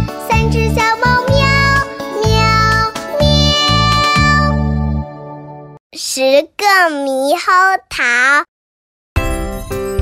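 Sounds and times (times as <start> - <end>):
child singing: 0.0 - 4.6.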